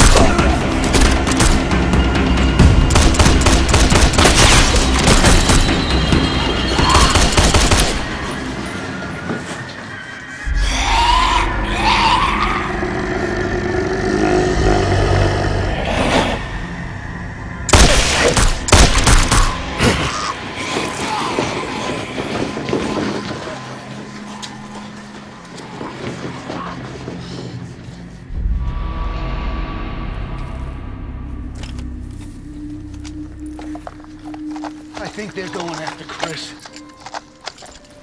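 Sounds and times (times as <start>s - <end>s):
tense score music: 0.0s - 38.0s
deep rumble: 27.1s - 34.8s.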